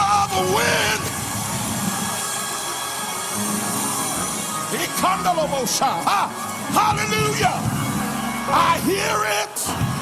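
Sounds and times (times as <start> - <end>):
congregation noise: 0.0 - 10.0
sustained keyboard chords: 3.4 - 10.0.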